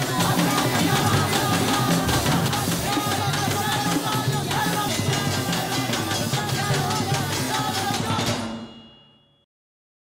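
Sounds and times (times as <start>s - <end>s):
women's chorus singing: 0.0s - 8.5s
rapid percussive strikes: 0.0s - 9.3s.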